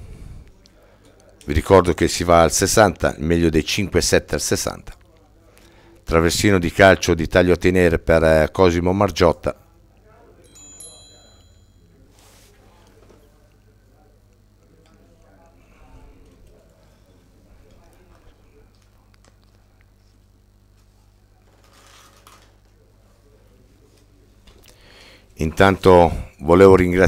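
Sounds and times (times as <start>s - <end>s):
low steady hum: 0.0s - 27.0s
faint murmuring voices: 9.6s - 25.4s.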